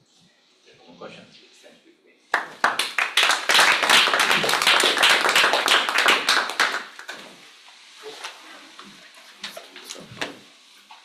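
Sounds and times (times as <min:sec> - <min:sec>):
audience applauding: 0:02.3 - 0:07.2.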